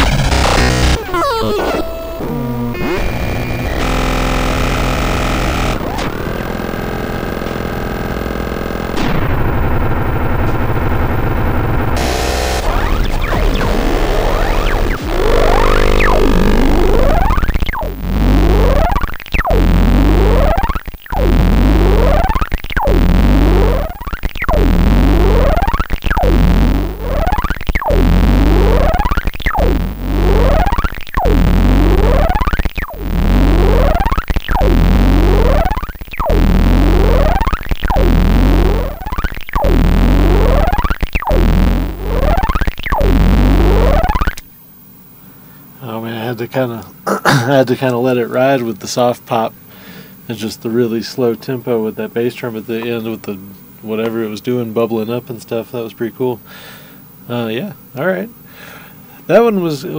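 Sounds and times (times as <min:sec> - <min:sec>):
bubbling synth sweep: 0:00.0 - 0:06.7, 0:08.3 - 0:44.4
distorted electronic music: 0:00.0 - 0:44.4
noisy drone: 0:00.0 - 0:44.4.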